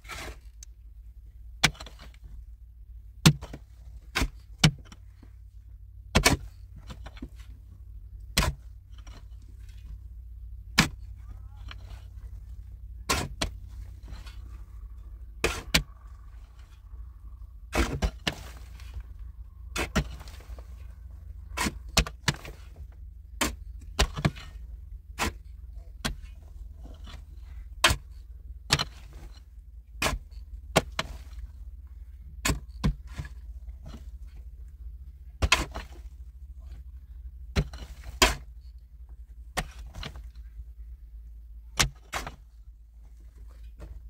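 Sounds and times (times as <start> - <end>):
pickaxe and shovel digging stony earth: 0.0 - 0.8, 1.4 - 5.4, 6.0 - 40.7, 41.7 - 44.0.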